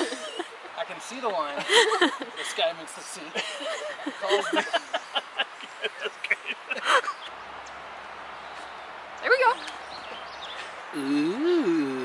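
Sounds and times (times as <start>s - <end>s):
person laughing: 3.4s - 7.2s.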